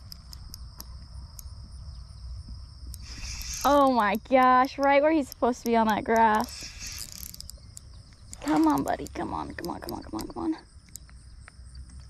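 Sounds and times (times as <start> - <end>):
faint ticks: 0.0 - 1.8, 2.4 - 12.0
insects chirping in grass: 0.0 - 12.0
wind rumble on microphone: 0.0 - 12.0.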